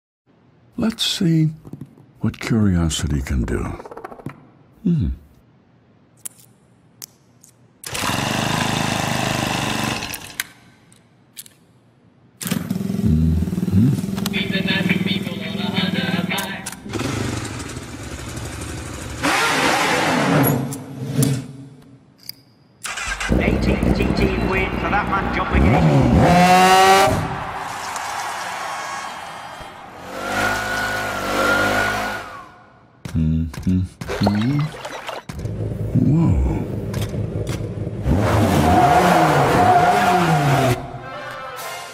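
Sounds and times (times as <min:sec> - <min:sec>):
small motorcycle engine running: 0:16.9 - 0:19.6.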